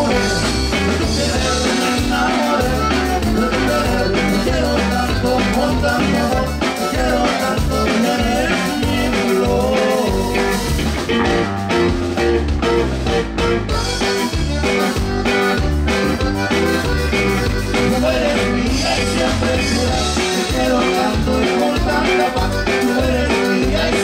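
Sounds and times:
button accordion melody: 0.0s - 24.0s
drum kit beat: 0.0s - 24.0s
strummed guitar chords: 0.0s - 24.0s.

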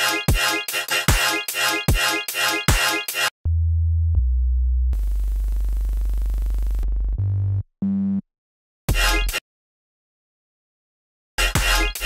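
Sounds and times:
sine-wave synth bass note: 3.5s - 8.2s.

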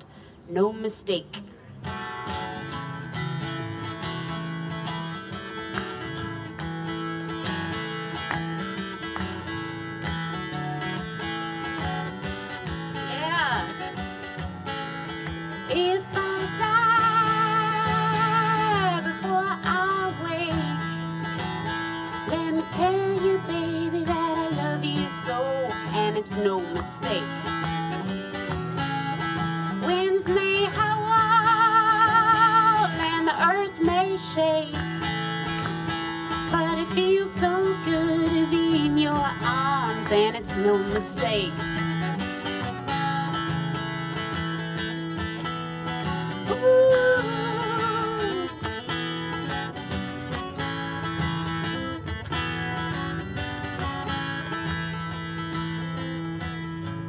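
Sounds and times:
acoustic guitar playing: 0.1s - 57.0s
woman singing: 13.0s - 13.9s, 15.6s - 21.1s, 22.1s - 27.5s, 29.6s - 34.9s, 36.3s - 41.8s, 46.3s - 48.7s.

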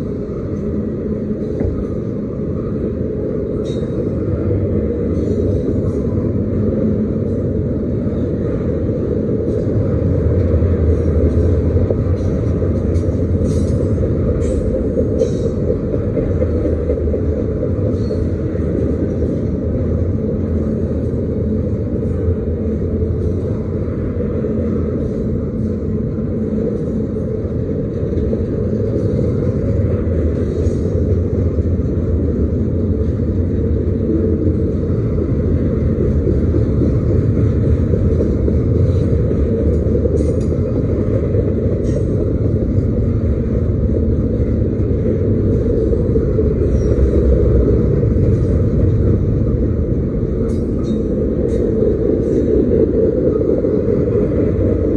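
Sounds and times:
freight train wheels rumbling on rail: 0.0s - 54.9s.

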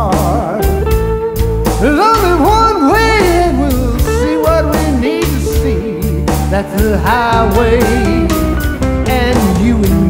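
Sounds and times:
bass: 0.0s - 10.0s
drums: 0.0s - 10.0s
slide electric guitar: 0.0s - 10.0s.

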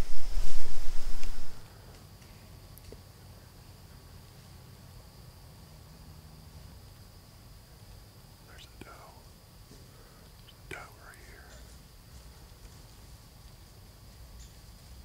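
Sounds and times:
low steady hiss: 0.0s - 15.0s
faint whispering: 8.4s - 9.3s, 10.0s - 11.8s.

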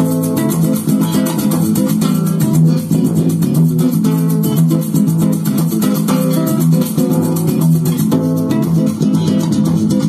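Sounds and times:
guitar music with bass line: 0.0s - 10.0s.

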